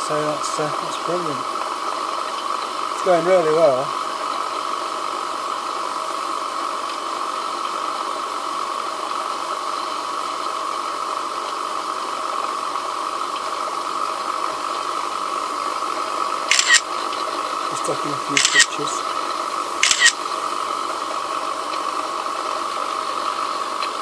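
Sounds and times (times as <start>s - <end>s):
steam hissing: 0.0s - 24.0s
steam turbine whine: 0.0s - 24.0s
sharp clicks: 16.5s - 17.2s, 17.8s - 19.0s, 19.8s - 20.2s.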